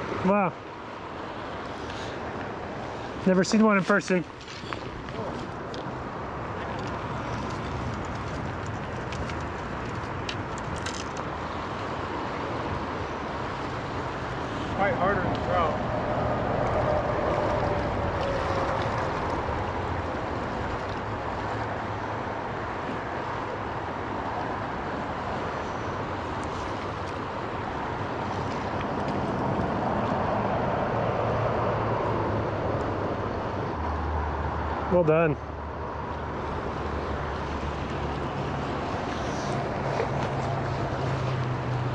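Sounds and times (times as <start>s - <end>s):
fast river current rushing: 0.0s - 41.9s.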